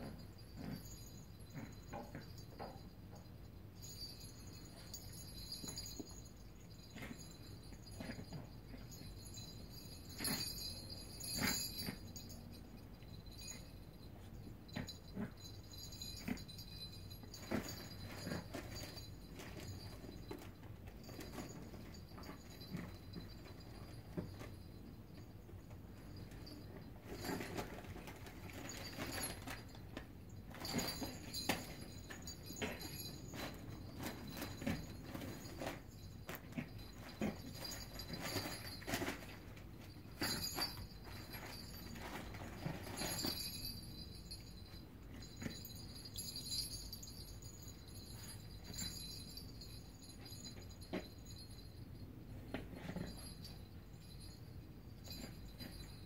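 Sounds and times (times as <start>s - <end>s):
light knocks and jingly rattles: 0.0s - 56.0s.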